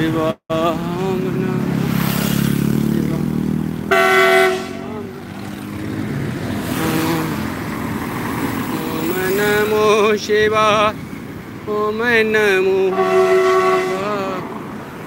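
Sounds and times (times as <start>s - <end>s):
traffic engine rumble: 0.0s - 15.0s
vehicle passing: 0.5s - 15.0s
vehicle horn blast: 3.9s - 5.1s, 12.9s - 14.4s.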